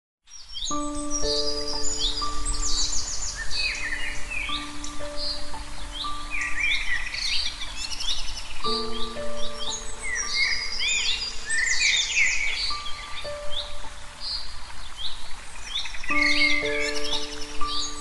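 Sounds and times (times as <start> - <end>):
birds chirping: 0.3 - 18.0
soft background music: 0.6 - 18.0.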